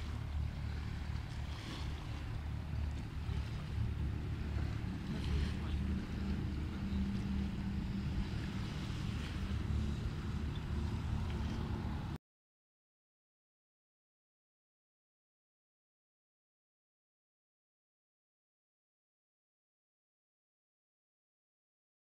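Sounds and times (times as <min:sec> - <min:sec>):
low engine drone: 0:00.0 - 0:12.2
wind rumbling on microphone: 0:00.0 - 0:12.2.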